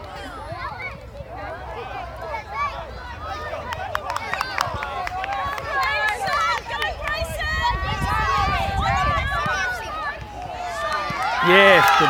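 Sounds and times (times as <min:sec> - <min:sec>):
people shouting and calling out: 0:05.8 - 0:12.0.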